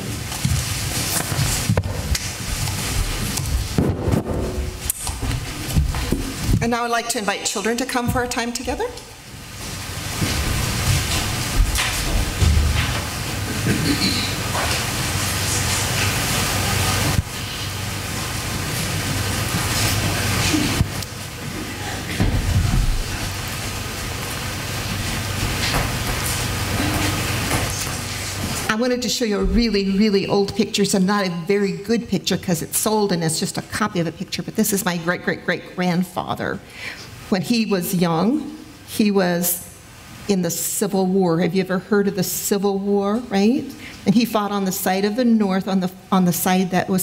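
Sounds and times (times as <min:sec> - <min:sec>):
rushing room noise with hum: 0:00.0 - 0:47.0
knocks and thumps: 0:03.5 - 0:06.6, 0:10.2 - 0:14.2.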